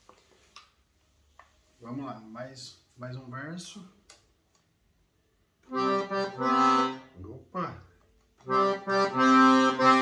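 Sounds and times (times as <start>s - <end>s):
accordion chord: 5.6s - 7.2s, 8.4s - 10.0s.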